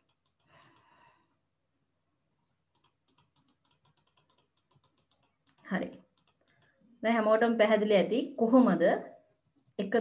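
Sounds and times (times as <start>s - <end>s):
keyboard typing: 0.0s - 1.1s, 2.5s - 6.8s.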